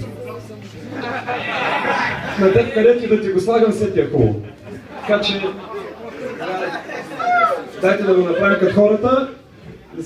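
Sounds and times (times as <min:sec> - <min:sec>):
crowd chatter: 0:00.0 - 0:10.0
man talking: 0:02.2 - 0:05.8, 0:07.8 - 0:10.0.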